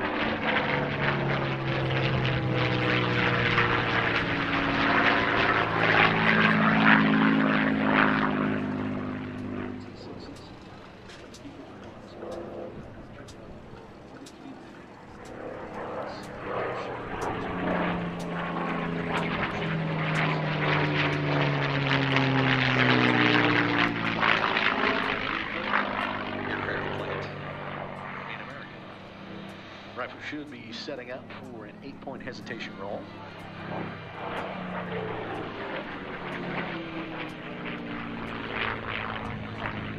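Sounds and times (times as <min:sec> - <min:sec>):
propeller aircraft engine overhead: 0:00.0 - 0:39.9.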